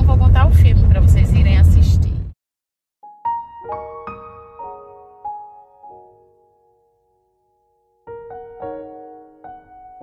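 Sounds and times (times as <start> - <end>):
car cabin rumble: 0.0 - 2.3
woman talking: 0.0 - 2.3.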